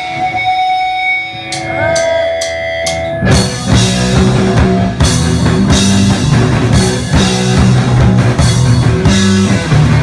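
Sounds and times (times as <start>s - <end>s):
guitar feedback ringing: 0.0s - 10.0s
punk band playing: 0.0s - 10.0s.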